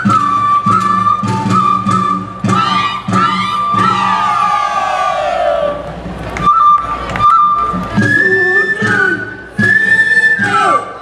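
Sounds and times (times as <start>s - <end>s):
group shouting and whooping: 2.6s - 5.9s.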